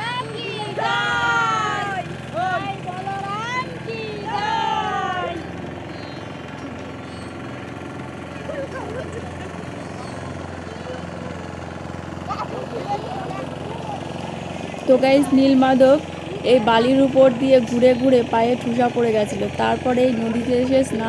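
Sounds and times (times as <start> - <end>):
people shouting and calling out: 0.0 - 5.7, 10.6 - 21.0
faint voices: 0.0 - 21.0.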